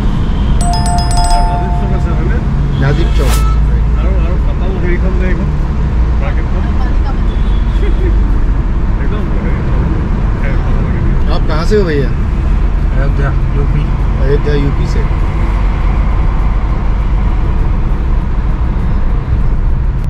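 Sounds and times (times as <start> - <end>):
car engine and tyre rumble: 3.7 - 20.0.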